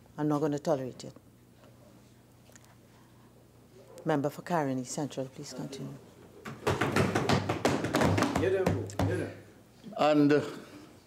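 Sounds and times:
hands thumping on wooden desks: 6.4 - 9.3.

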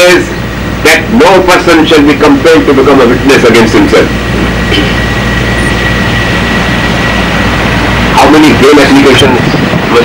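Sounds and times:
low hum and hiss of room noise: 0.0 - 10.0
thin high whine: 0.0 - 10.0.

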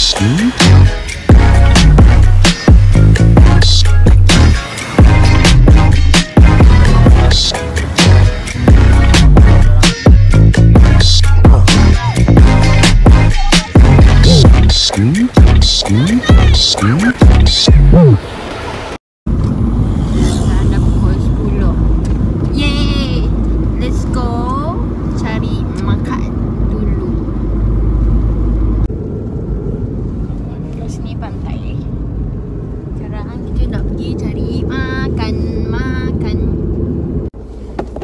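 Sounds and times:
voices talking: 0.0 - 0.8, 10.8 - 18.3
car engine and road noise: 0.0 - 38.0.

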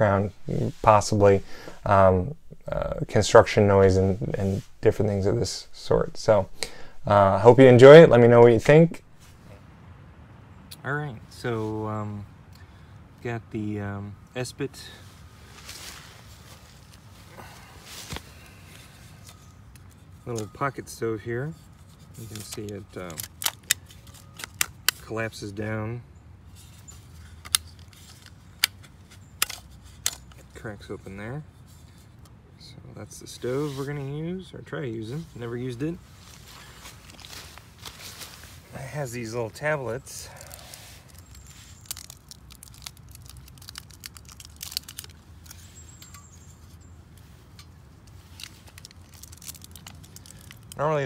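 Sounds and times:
distant city hum: 0.0 - 30.6
foil crinkling and tearing: 22.2 - 24.8, 40.2 - 45.8, 48.2 - 51.0.

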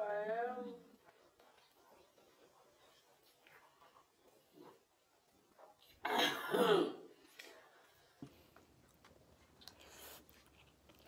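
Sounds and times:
woman clearing throat: 6.0 - 7.1.

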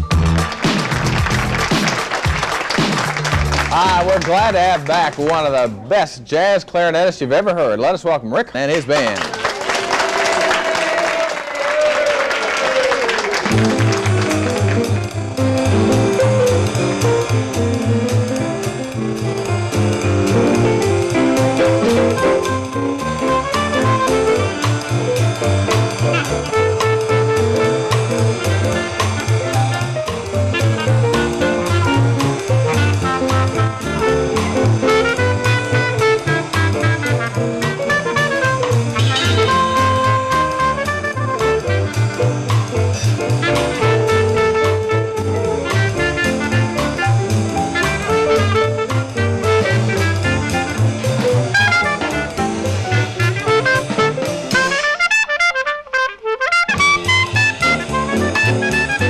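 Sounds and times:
studio audience applauding: 0.0 - 5.8, 8.7 - 16.6
jazz band playing swing: 0.0 - 8.0, 12.6 - 59.0
clarinet lead: 13.3 - 59.0.

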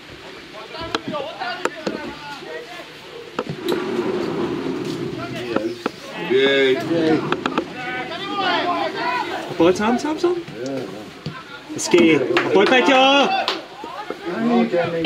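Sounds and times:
players shouting: 3.6 - 10.5.

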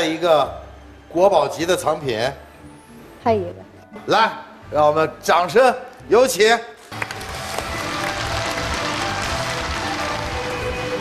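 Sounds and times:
stage entrance music: 0.0 - 11.0
audience applauding: 6.9 - 11.0.

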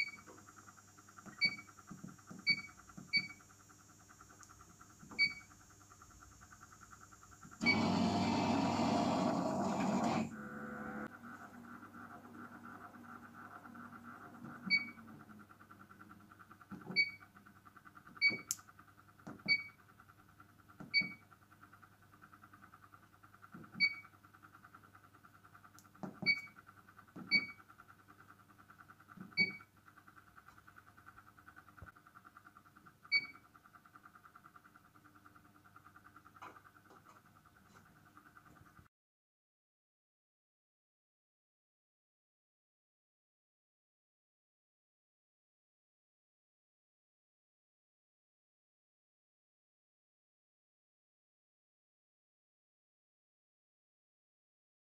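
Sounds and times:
pulsing machine hum: 0.0 - 38.6.

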